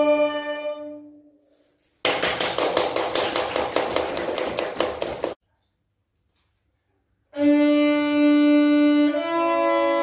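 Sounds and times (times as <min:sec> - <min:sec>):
audience applauding: 0:02.0 - 0:05.4.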